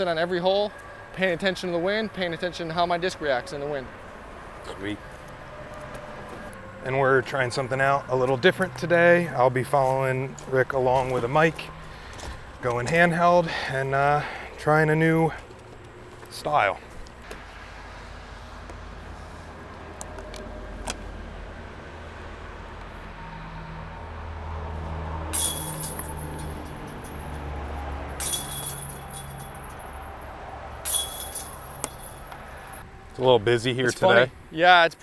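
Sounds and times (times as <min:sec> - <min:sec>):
basket chains jangling: 0:25.3 - 0:27.5, 0:28.2 - 0:30.2, 0:30.8 - 0:32.8.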